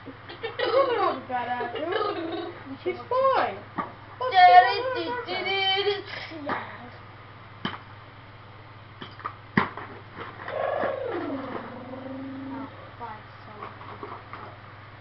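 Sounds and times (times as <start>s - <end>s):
child's voice: 4.2s - 7.0s
falling vocal sound effect: 10.5s - 13.0s.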